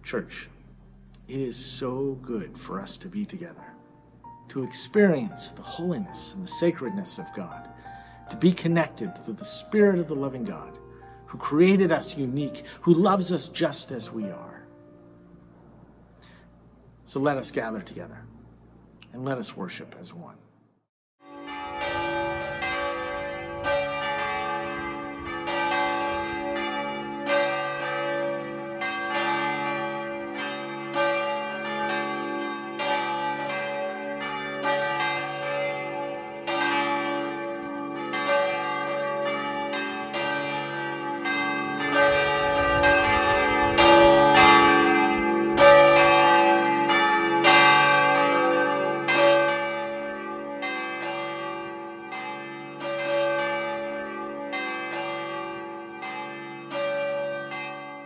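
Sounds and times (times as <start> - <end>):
church bells pealing: 0.0 - 18.6, 21.2 - 58.0.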